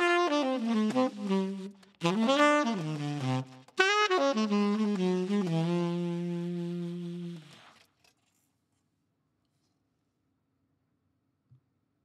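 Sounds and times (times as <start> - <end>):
saxophone long note: 0.0 - 7.6.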